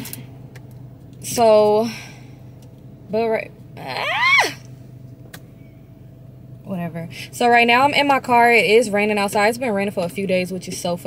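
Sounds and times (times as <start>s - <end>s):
idling car hum: 0.0s - 11.0s.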